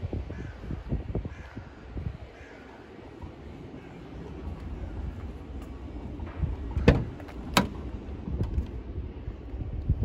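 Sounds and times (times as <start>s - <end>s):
car door latch clicks: 6.8s - 7.8s.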